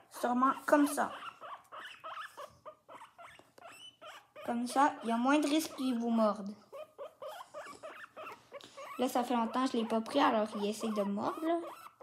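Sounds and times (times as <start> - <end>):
guinea pig squeaking: 0.0 - 12.0.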